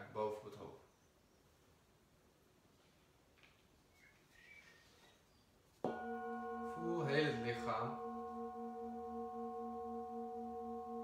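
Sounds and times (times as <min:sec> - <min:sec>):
metal singing bowl ringing: 0:05.9 - 0:11.0.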